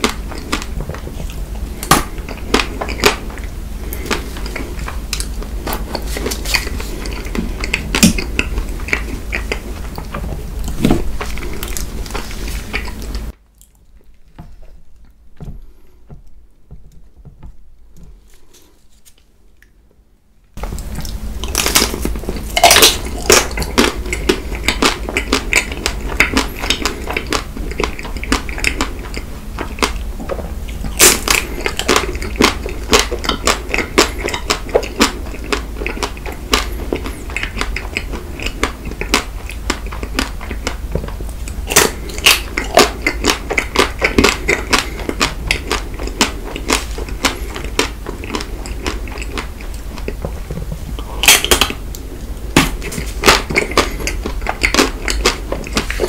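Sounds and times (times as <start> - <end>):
chewing: 0.0 - 16.0, 20.7 - 56.0.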